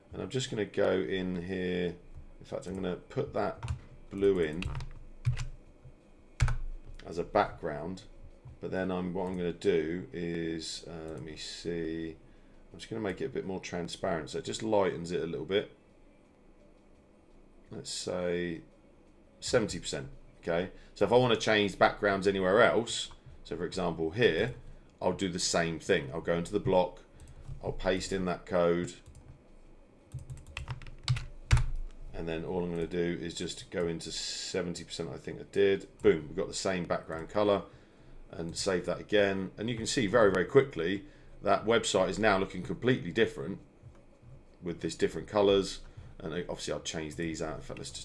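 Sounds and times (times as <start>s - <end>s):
computer keyboard keys tapping: 3.6s - 5.6s, 6.4s - 7.0s, 30.1s - 31.9s.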